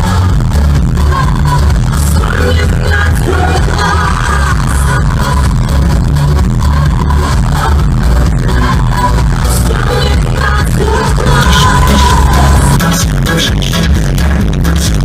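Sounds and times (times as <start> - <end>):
woman singing into a microphone: 0.0 - 5.9, 6.6 - 12.8
live pop music with heavy bass: 0.0 - 15.0.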